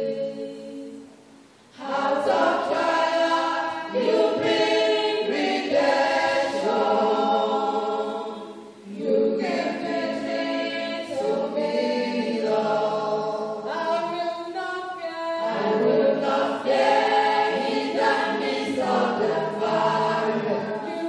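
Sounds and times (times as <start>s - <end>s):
choir singing unaccompanied: 0.0s - 21.0s.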